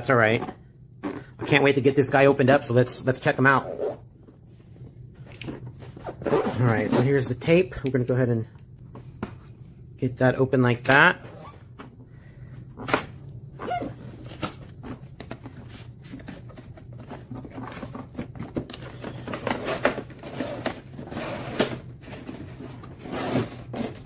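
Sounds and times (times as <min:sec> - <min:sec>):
cardboard and plastic rustling: 0:12.6 - 0:24.0.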